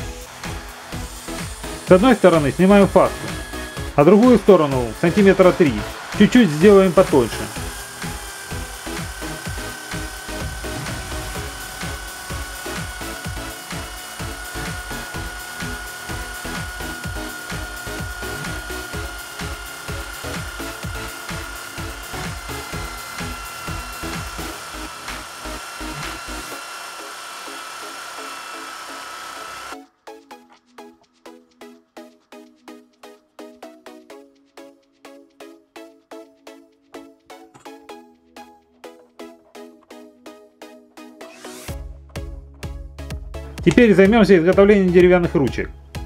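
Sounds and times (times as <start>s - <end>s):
drill grinding rod on abrasive disc: 0.0s - 29.8s.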